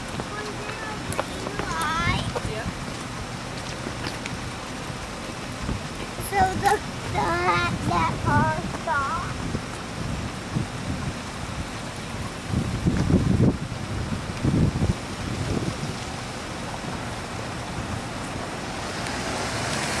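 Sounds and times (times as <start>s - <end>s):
low rumbling: 0.0s - 20.0s
road traffic: 0.0s - 20.0s
wind on microphone: 0.0s - 20.0s.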